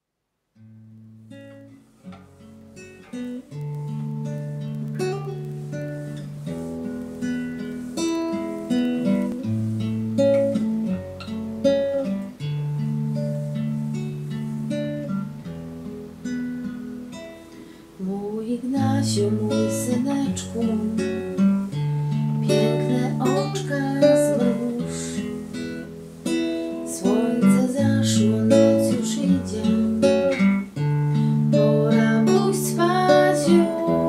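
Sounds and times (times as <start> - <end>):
classical guitar playing slowly: 0.5 - 34.0.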